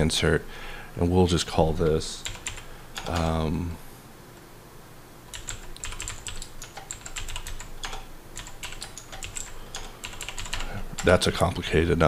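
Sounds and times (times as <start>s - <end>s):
typing on computer keyboard: 2.2s - 3.3s, 5.3s - 11.2s.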